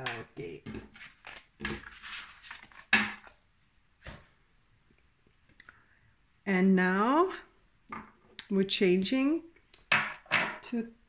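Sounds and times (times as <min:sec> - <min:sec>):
cards rustling and shuffling: 0:00.0 - 0:03.4.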